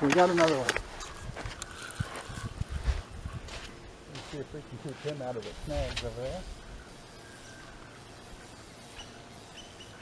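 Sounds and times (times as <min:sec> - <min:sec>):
footsteps on sand: 0:00.2 - 0:06.2.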